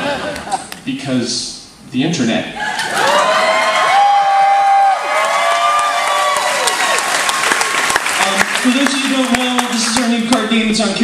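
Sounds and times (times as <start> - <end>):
audience cheering with whoops: 2.6 - 8.2
audience clapping: 3.0 - 10.7.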